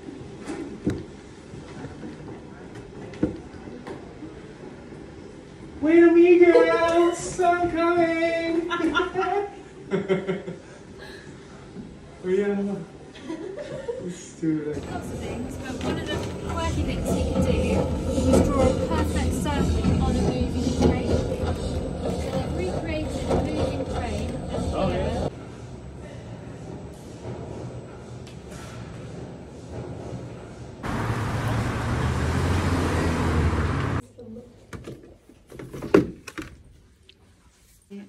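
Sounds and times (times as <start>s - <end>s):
people laughing: 8.7s - 10.9s, 13.1s - 14.4s
people talking: 14.6s - 21.5s, 22.1s - 25.3s.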